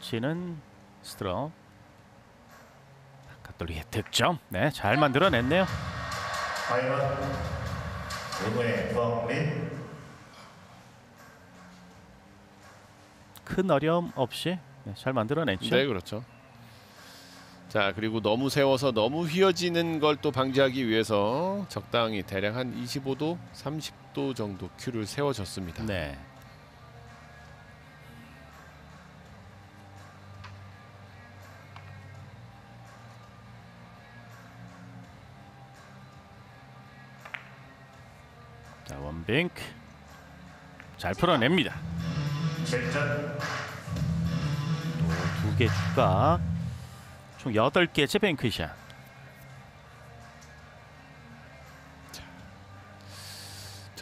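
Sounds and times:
faint background music: 0:00.0 - 0:54.0.

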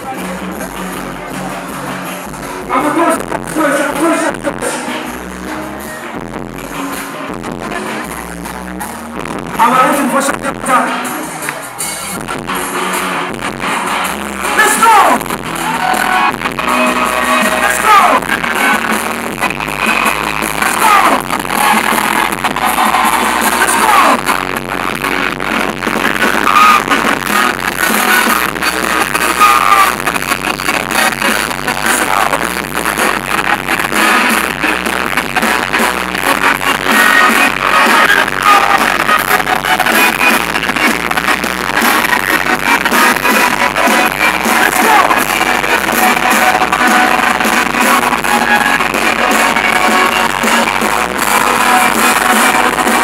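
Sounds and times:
drum beat: 0:12.2 - 0:53.0.

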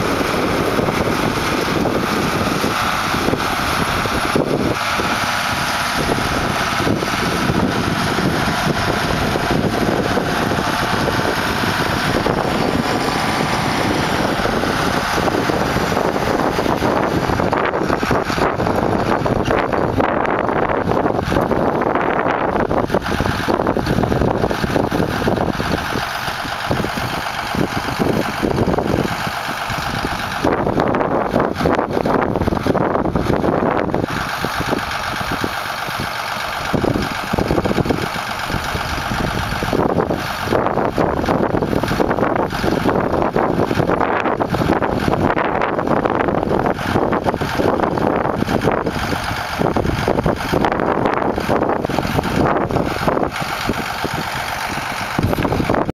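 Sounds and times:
tractor diesel engine running: 0:00.0 - 0:55.9
wind buffeting microphone: 0:00.0 - 0:55.9.

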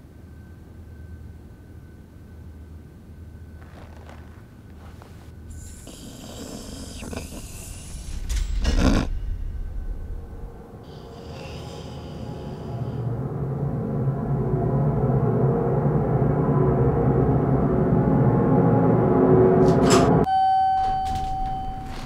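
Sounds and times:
elevator low rumble: 0:00.0 - 0:22.0
elevator chime tone: 0:19.7 - 0:22.0.

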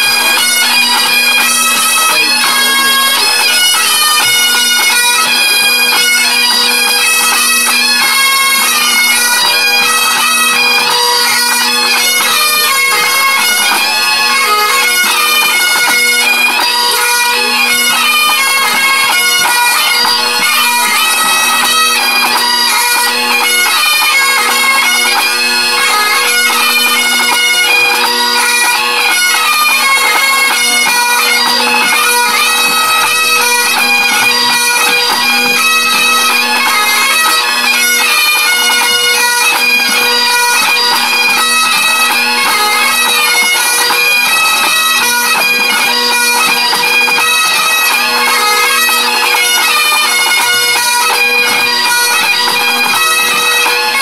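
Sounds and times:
bagpipe band playing: 0:00.0 - 0:54.0.

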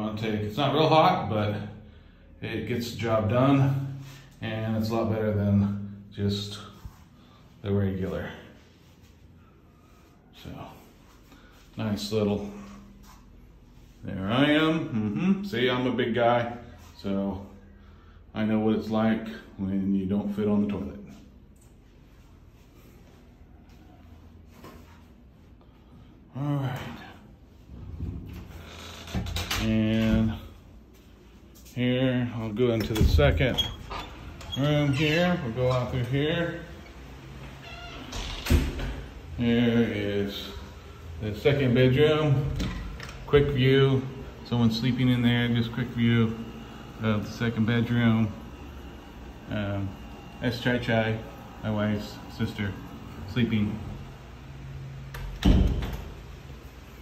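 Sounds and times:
door shutting thud: 0:55.2 - 0:56.2.

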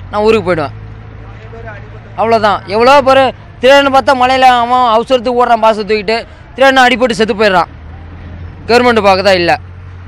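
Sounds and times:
man speaking: 0:00.0 - 0:07.7, 0:08.6 - 0:09.6.

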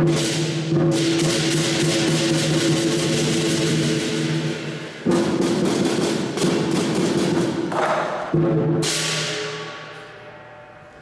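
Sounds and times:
drum strikes: 0:00.0 - 0:10.0
clashing cymbals: 0:00.0 - 0:11.0.

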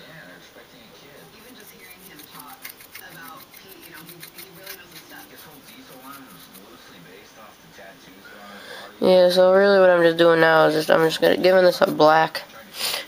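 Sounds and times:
paintbrush scrubbing on plastic: 0:01.4 - 0:06.9.

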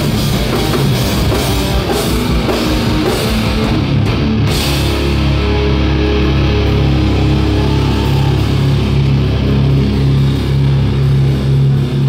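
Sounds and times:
bass riffing: 0:00.0 - 0:12.0
distorted electric guitar riffing: 0:00.0 - 0:12.0
drums: 0:00.0 - 0:12.0.

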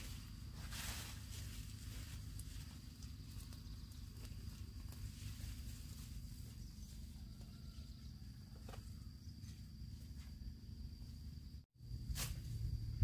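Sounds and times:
rustling of vines: 0:00.0 - 0:07.6
low rumble: 0:11.8 - 0:13.0.

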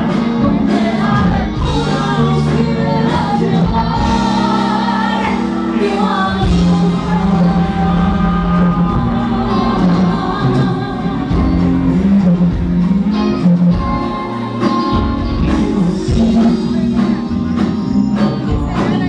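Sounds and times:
woman singing into microphone: 0:00.0 - 0:12.6
live band playing: 0:00.0 - 0:19.0.

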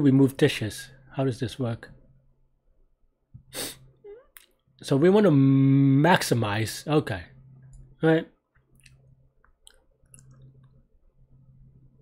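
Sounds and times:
man's sharp breath through nose: 0:03.5 - 0:03.9.

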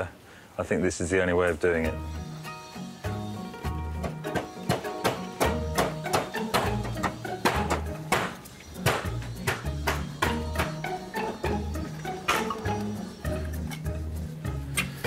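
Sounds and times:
background music with bass line: 0:01.9 - 0:15.0.

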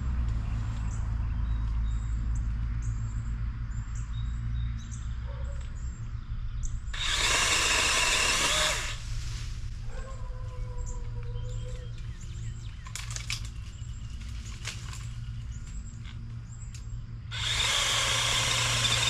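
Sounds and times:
birds chirping: 0:00.1 - 0:09.0, 0:09.9 - 0:19.0
pole saw chain running: 0:07.0 - 0:09.0, 0:17.3 - 0:19.0.

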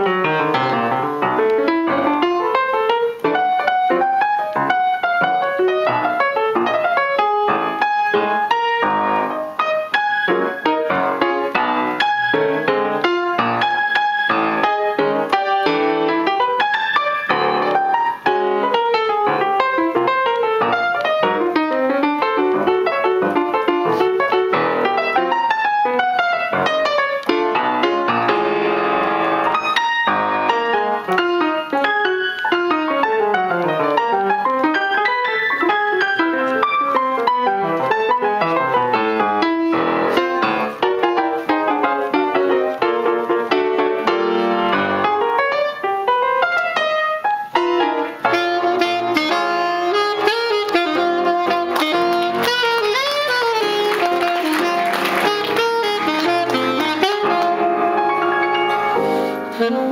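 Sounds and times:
grand piano playing jazz: 0:00.0 - 0:59.9.

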